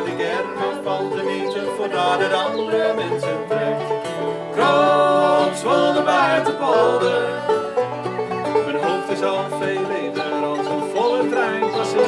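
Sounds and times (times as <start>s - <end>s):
person singing: 0.0s - 3.9s, 4.6s - 7.8s, 8.5s - 12.0s
acoustic bluegrass band playing: 0.0s - 12.0s
banjo: 0.0s - 12.0s.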